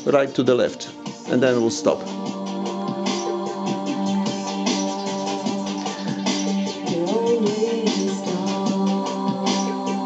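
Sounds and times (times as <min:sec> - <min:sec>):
guitar music with steady beat: 0:02.1 - 0:08.9.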